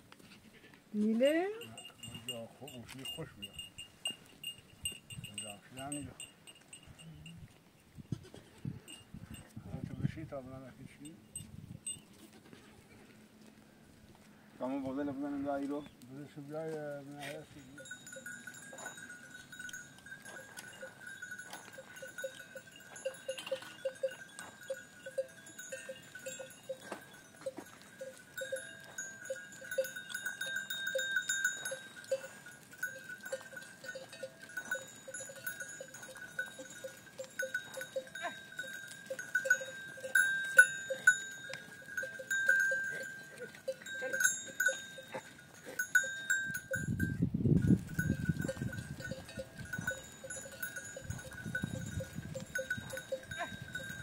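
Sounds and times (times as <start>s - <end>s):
goat bells clinking: 1.0s - 12.7s, 14.2s - 54.0s.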